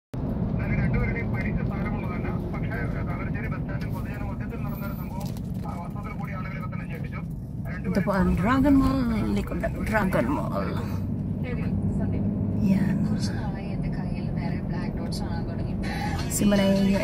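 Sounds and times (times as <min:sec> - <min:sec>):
road and engine rumble: 0:00.2 - 0:17.0.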